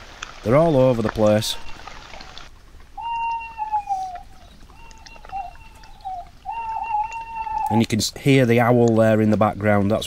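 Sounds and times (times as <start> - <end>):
owl hooting: 1.4 - 7.9.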